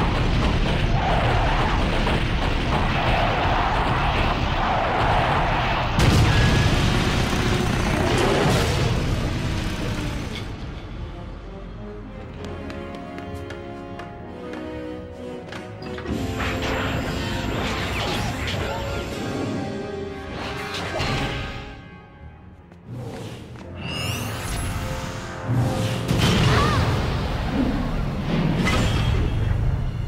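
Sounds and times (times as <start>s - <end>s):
dramatic music score: 0.0s - 30.0s
rushing roar of rocket motors: 3.2s - 10.6s.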